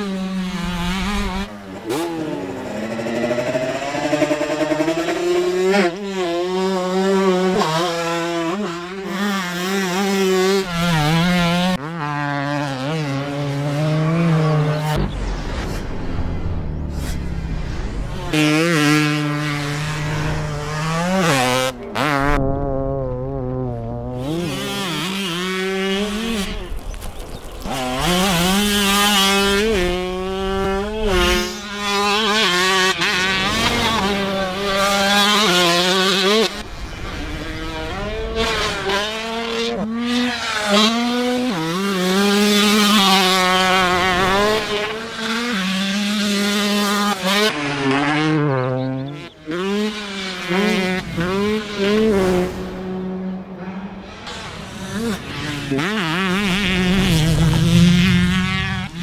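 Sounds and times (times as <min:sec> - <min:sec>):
motocross bike engine: 0:00.0 - 0:59.0.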